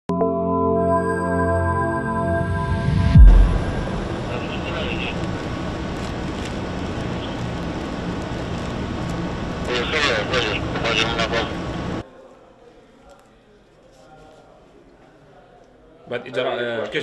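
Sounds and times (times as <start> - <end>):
outdoor background noise: 3.2 - 17.0
people talking: 4.2 - 5.6, 9.6 - 17.0.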